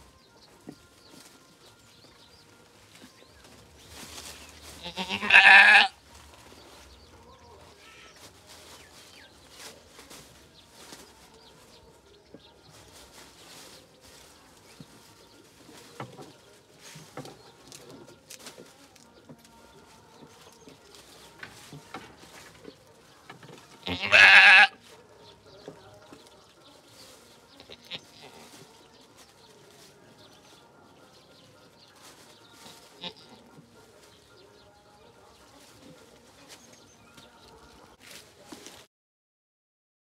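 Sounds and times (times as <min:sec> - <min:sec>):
goat bleating: 0:04.8 - 0:06.0, 0:23.8 - 0:24.8, 0:27.6 - 0:28.5, 0:32.9 - 0:33.4
faint clicks and rustles: 0:06.0 - 0:24.1.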